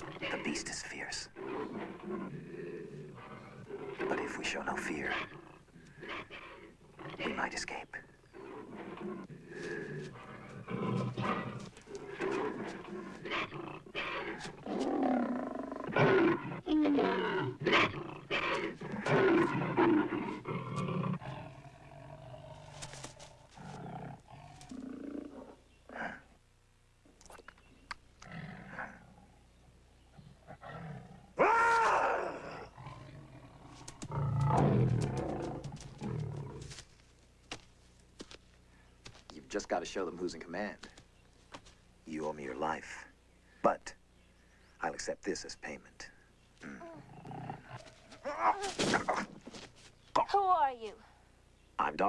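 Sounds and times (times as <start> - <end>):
panther growling and roaring: 0.0 - 7.4, 8.4 - 26.3, 28.2 - 29.4, 30.4 - 36.8, 46.6 - 49.4.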